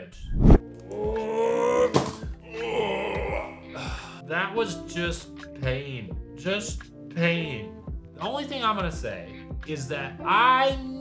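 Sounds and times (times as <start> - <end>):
background music: 0.0 - 11.0
man groaning: 0.9 - 4.1.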